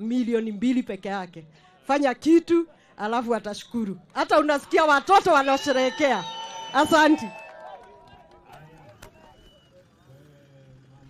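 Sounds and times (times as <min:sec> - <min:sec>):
woman speaking over public address: 0:00.0 - 0:07.4
crowd voices: 0:01.4 - 0:11.0.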